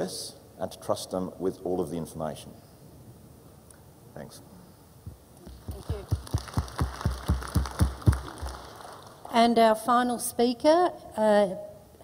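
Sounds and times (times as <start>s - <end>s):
hands clapping in applause: 5.4s - 9.3s.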